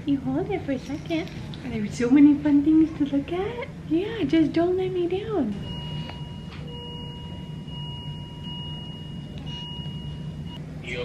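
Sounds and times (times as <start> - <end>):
low hum: 0.0 - 10.9.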